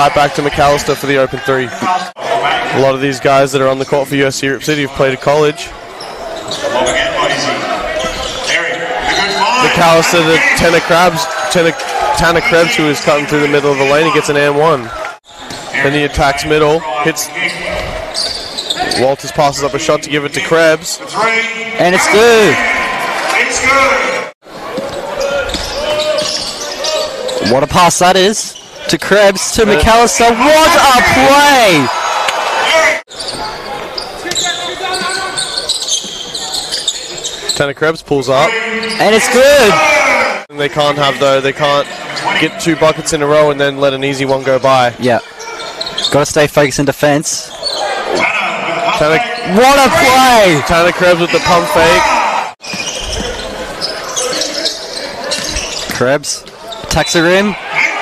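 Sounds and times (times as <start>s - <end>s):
voices: 0.0s - 58.0s
people shouting: 29.7s - 33.0s, 39.2s - 40.5s, 47.7s - 52.6s, 57.4s - 58.0s.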